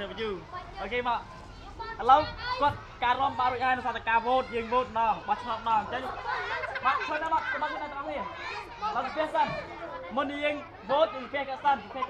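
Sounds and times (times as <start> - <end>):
people talking and chattering: 0.0 - 12.0.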